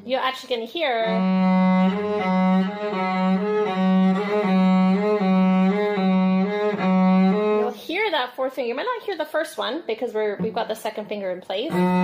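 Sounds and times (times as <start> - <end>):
bowed cello note with vibrato: 1.0 - 7.8, 11.7 - 12.0.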